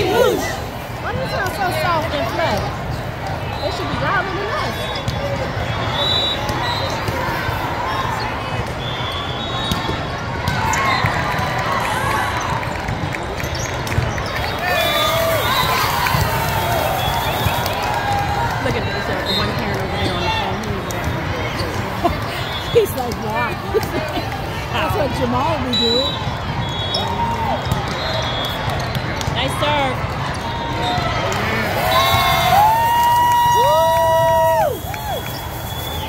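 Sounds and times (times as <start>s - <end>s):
murmur of voices: 0.0s - 36.0s
volleyball hits: 9.6s - 11.6s, 26.3s - 32.5s.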